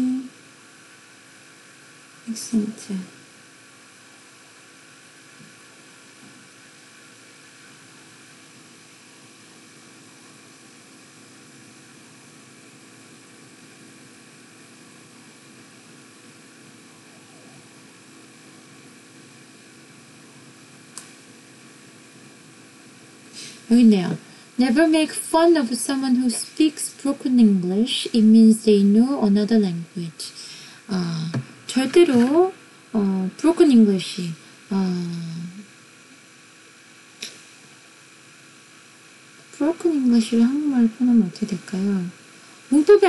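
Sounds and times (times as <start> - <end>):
low hiss with faint hum: 0.0 - 43.0.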